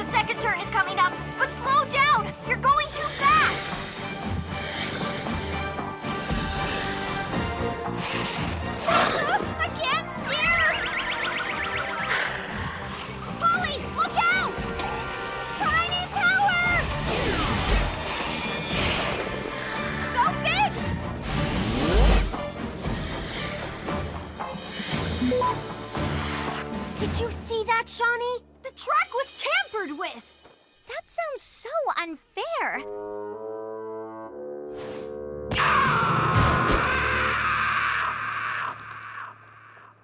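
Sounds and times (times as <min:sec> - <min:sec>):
dramatic cartoon music: 0:00.0 - 0:40.0.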